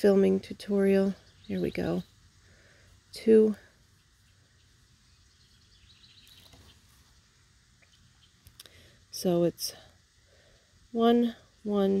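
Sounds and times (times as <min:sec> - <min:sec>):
faint outdoor background noise: 0:00.0 - 0:12.0
faint high bird chirps: 0:03.2 - 0:07.2, 0:07.8 - 0:08.5.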